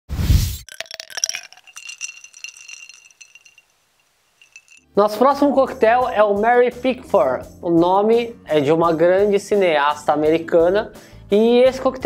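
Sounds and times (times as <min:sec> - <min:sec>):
high ringing: 0:00.7 - 0:04.9
sharp clinks: 0:00.7 - 0:04.9.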